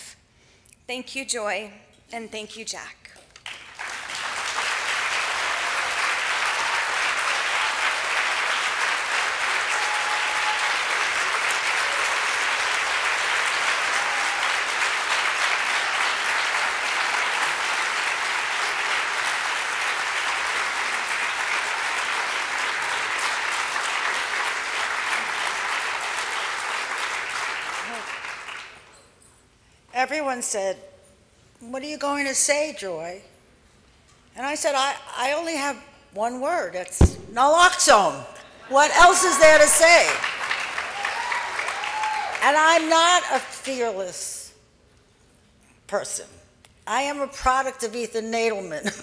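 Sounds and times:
audience applauding: 3.4s - 28.8s, 39.0s - 42.4s.

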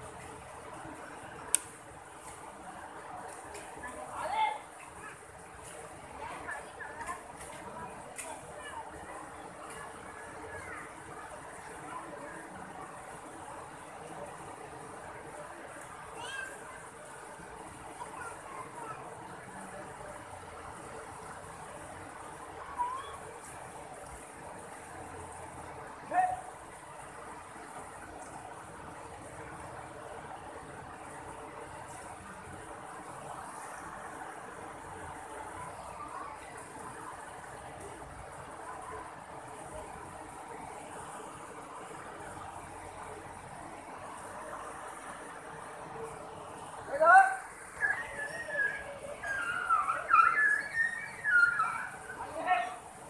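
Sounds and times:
river water rushing over rocks: 0.0s - 53.0s
short rising calls: 47.2s - 52.4s.

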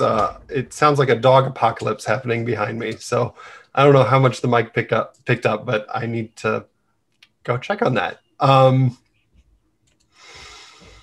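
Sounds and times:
soft breathy hiss: 10.1s - 11.0s.

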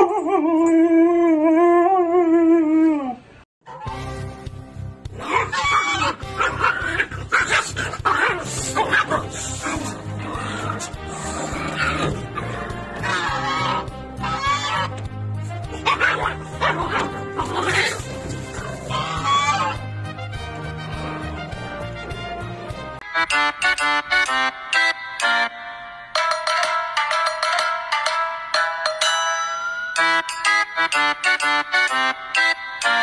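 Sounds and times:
background music: 3.7s - 33.0s
puppy barking: 5.2s - 9.3s, 15.8s - 18.0s.

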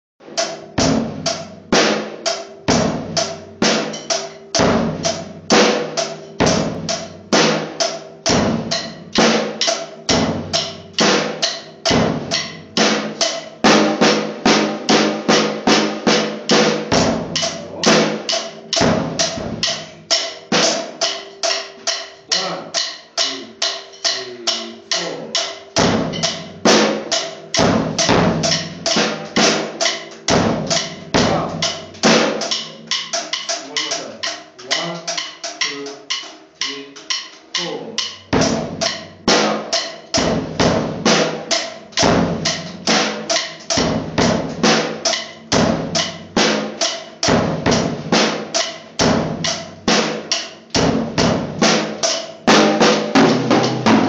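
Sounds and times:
snare drum: 0.2s - 22.6s, 24.1s - 54.0s.

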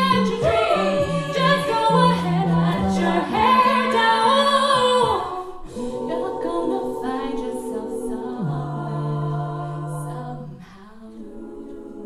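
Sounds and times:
women singing a cappella chord: 0.0s - 12.0s.

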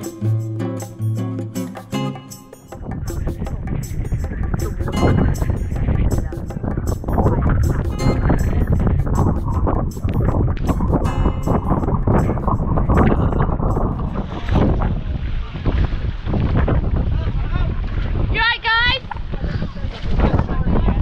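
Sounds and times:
background music: 0.0s - 14.2s
wind rumble on microphone: 2.8s - 21.0s.

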